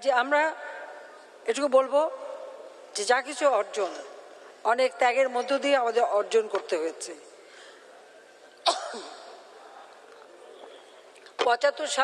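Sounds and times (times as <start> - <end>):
woman speaking: 1.4 - 7.2
woman coughing: 8.6 - 9.4.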